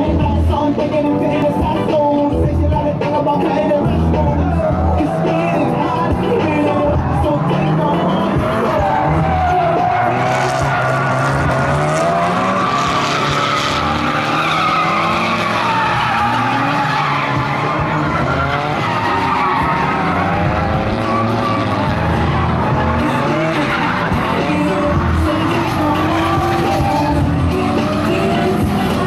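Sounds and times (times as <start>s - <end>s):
car engines revving: 0.0s - 29.0s
tyres squealing: 3.3s - 29.0s.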